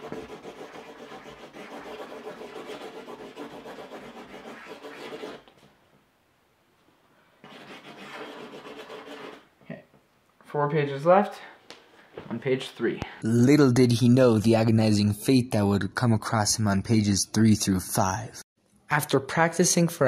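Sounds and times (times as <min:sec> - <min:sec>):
marker scribbling on paper: 0:00.0 - 0:05.4, 0:07.4 - 0:09.4.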